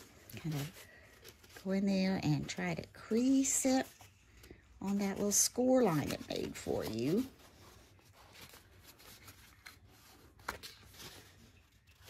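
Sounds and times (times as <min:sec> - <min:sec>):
paper rustling and crinkling: 0:00.0 - 0:12.0.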